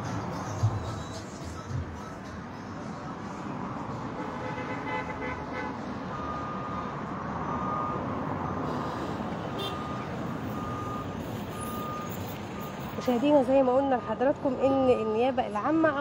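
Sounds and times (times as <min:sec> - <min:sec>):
street traffic noise: 0:00.0 - 0:16.0
reversing alarm beeping: 0:06.1 - 0:08.7, 0:09.6 - 0:15.1.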